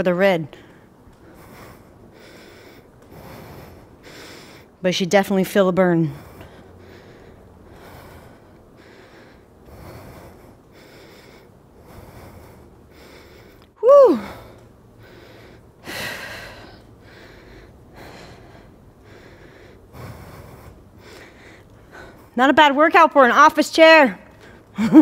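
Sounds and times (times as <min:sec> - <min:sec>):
woman breathing hard: 0:00.5 - 0:04.8, 0:06.0 - 0:22.4
woman shouting whoo: 0:13.8 - 0:14.3.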